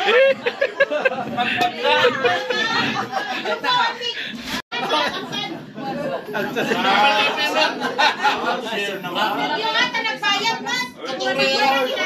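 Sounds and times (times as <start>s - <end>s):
overlapping conversational chatter: 0.0s - 12.0s.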